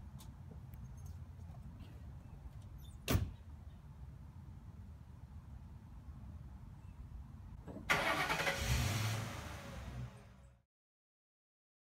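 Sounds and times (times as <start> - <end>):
car engine starting and running: 7.7 - 10.6.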